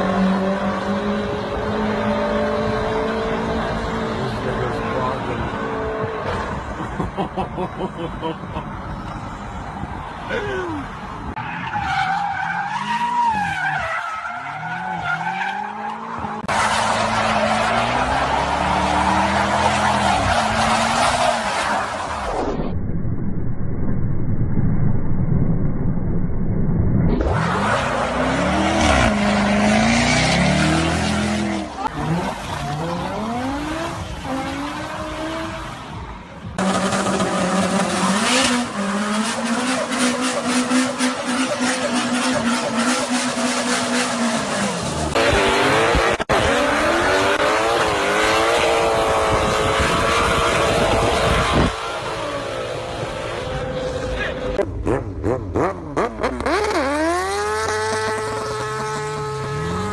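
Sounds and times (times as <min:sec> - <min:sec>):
car engines revving: 0:00.0 - 0:22.6, 0:27.1 - 0:59.9.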